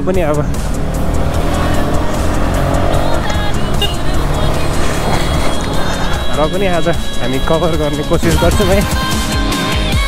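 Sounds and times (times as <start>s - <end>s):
motorcycle engine running: 0.0s - 10.0s
music playing: 0.0s - 10.0s
tyre noise on wet road: 0.0s - 10.0s.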